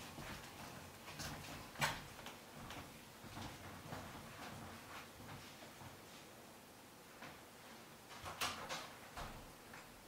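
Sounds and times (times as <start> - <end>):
faint footsteps: 0.0 - 6.4.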